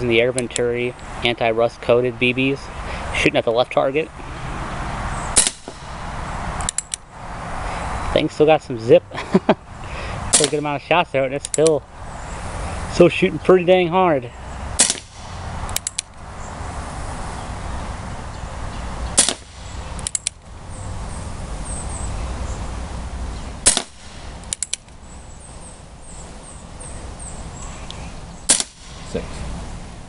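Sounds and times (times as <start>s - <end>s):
bb gun pops: 5.4s - 5.9s, 10.3s - 10.6s, 14.8s - 16.1s, 19.2s - 20.4s, 23.6s - 24.8s, 28.5s - 29.0s
revolver hammer cocking clicks: 6.6s - 7.0s, 11.4s - 11.7s, 15.7s - 16.2s, 19.2s - 20.4s, 23.6s - 25.0s.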